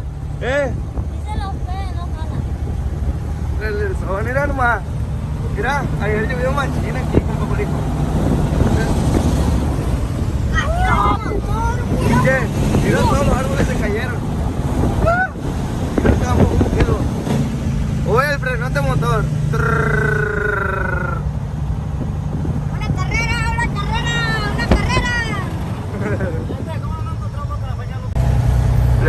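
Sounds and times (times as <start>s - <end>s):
diesel truck engine running: 0.0s - 29.0s
people yelling: 10.5s - 12.3s, 15.0s - 15.5s, 23.1s - 25.5s.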